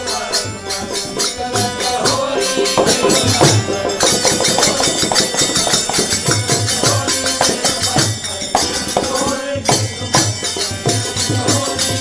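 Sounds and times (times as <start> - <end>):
jingling hand percussion: 0.0 - 12.0.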